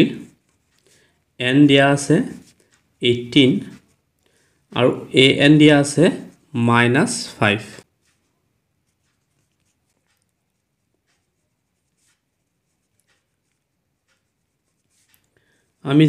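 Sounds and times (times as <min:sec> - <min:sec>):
person speaking: 0:00.0 - 0:00.4, 0:01.4 - 0:04.0, 0:04.7 - 0:10.3, 0:15.8 - 0:16.0
pen scratching on paper: 0:07.8 - 0:15.3.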